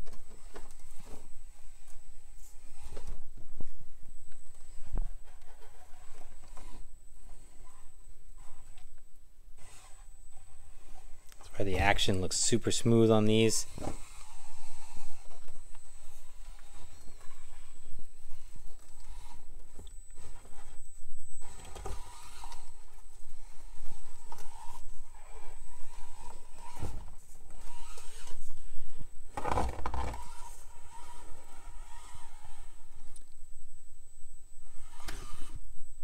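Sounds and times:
small electric motor running: 9.6s - 11.2s, 13.6s - 19.6s, 21.4s - 33.1s, 34.6s - 35.6s.

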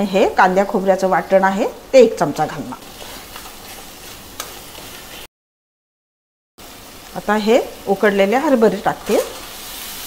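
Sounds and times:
masala sizzling in a pan: 0.0s - 5.3s, 6.6s - 10.0s
spatula stirring and scraping: 2.4s - 5.3s.

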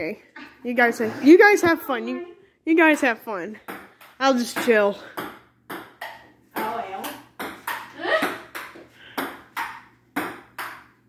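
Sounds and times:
ping-pong ball clicking: 3.7s - 11.0s.

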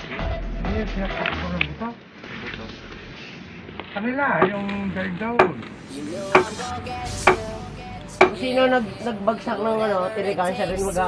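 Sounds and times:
hammer and chisel striking concrete: 5.4s - 5.6s, 6.4s - 6.6s, 7.3s - 7.5s.

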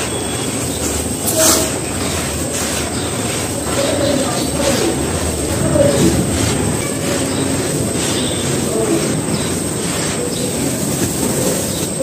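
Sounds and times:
sand grains pouring: 0.0s - 12.0s.

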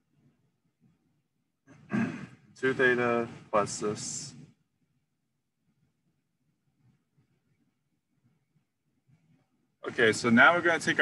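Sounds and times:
man speaking: 2.6s - 4.5s, 9.8s - 11.0s.

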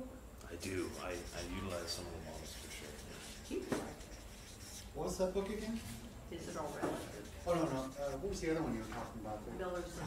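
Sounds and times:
marker scraping on paper: 0.6s - 10.0s.

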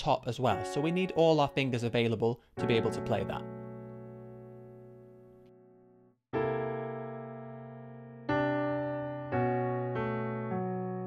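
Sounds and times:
piano chords: 0.5s - 11.0s.

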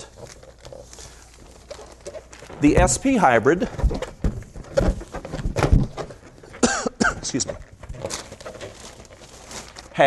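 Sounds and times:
man coughing: 6.6s - 7.4s.

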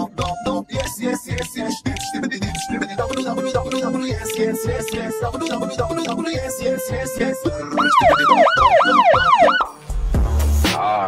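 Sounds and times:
police siren yelp: 2.3s - 9.7s.

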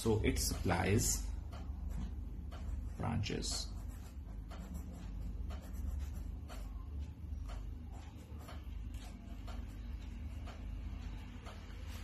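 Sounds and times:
low steady hum: 0.0s - 12.0s
pen scratching on paper: 3.6s - 6.7s.

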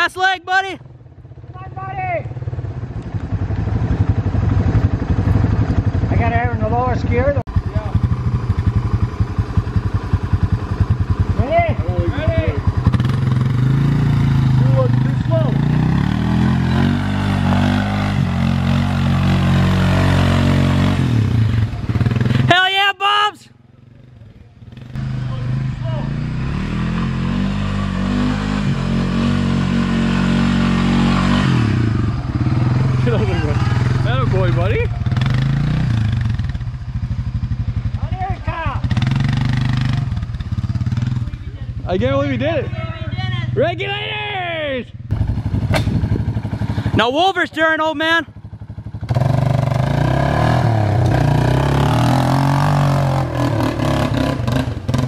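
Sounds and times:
atv engine running under load: 0.8s - 22.6s, 23.7s - 43.7s, 45.1s - 55.0s.

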